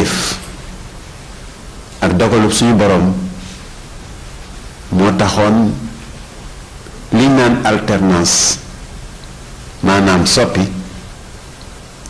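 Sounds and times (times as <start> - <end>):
man speaking: 0.0 - 0.4, 2.0 - 3.4, 4.9 - 6.0, 7.1 - 8.7, 9.8 - 11.0
low background hiss: 0.0 - 12.0.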